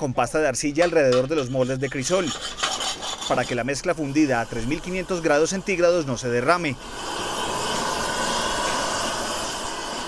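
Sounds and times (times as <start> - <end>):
gas burner hissing: 0.0 - 10.0.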